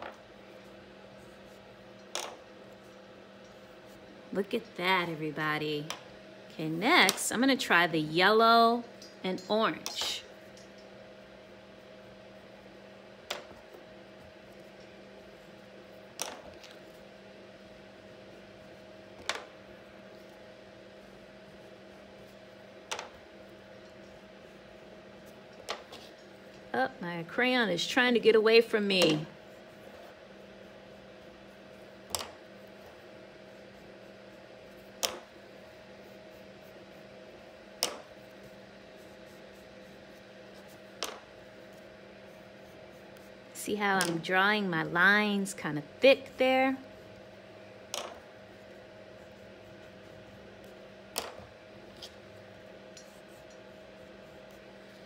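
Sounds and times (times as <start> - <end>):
low room hum: 0.0 - 55.0.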